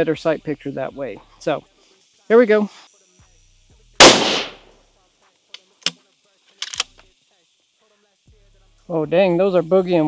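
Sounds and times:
rifle shot with echo: 0:04.0 - 0:04.7.

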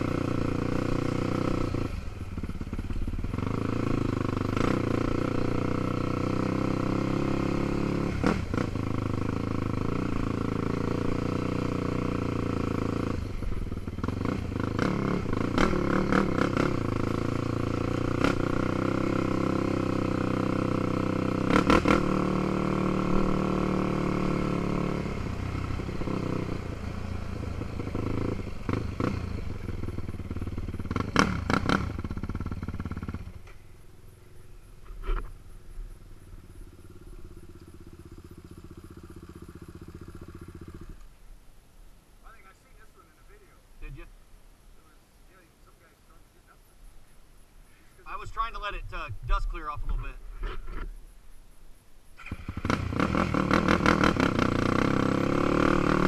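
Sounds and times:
dirt bike engine running: 0:00.0 - 0:41.2, 0:52.2 - 0:56.0.

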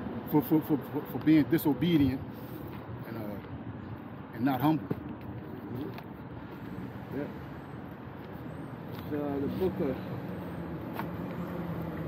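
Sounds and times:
city street traffic hum: 0:00.0 - 0:12.0.

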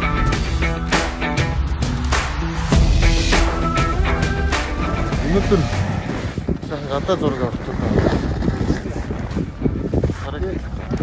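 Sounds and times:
wind buffeting microphone: 0:04.8 - 0:11.0.

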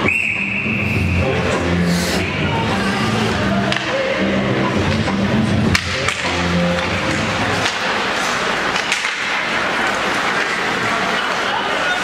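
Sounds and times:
arena music: 0:00.0 - 0:09.7.

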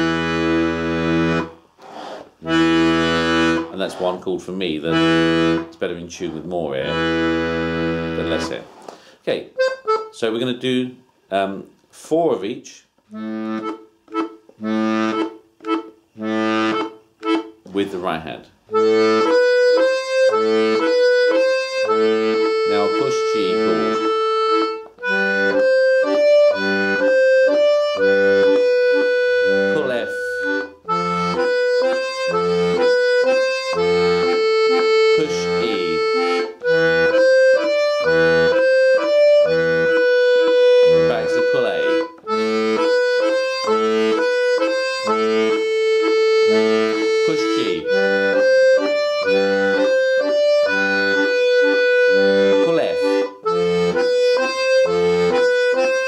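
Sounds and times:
button accordion playing: 0:00.0 - 0:09.0, 0:09.6 - 0:10.2, 0:13.1 - 0:18.1, 0:18.7 - 0:56.0.

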